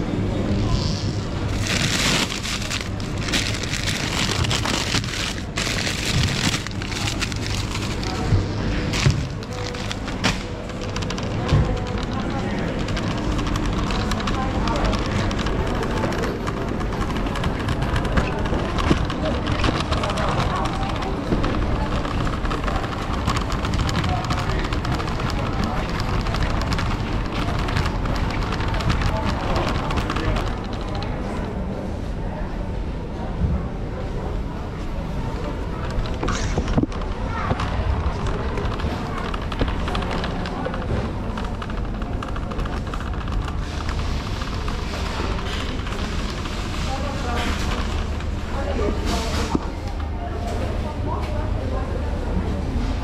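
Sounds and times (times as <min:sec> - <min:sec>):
shoppers chattering: 0:00.0 - 0:53.0
shopping trolley rattling: 0:00.5 - 0:31.4, 0:35.4 - 0:49.6.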